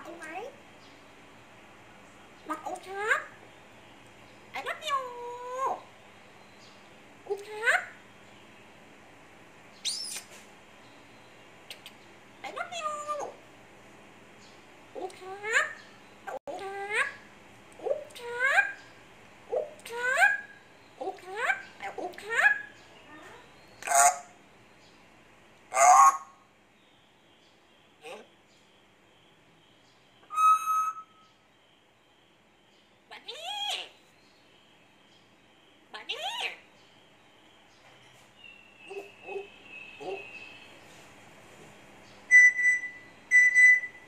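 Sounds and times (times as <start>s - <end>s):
parrot calling: 14.9s - 18.9s, 19.5s - 24.4s, 25.7s - 26.5s, 28.0s - 28.4s, 30.2s - 31.3s, 33.1s - 34.0s, 35.9s - 36.7s, 38.9s - 40.7s, 42.3s - 44.0s
parrot whistling: 30.2s - 31.2s, 42.3s - 44.0s.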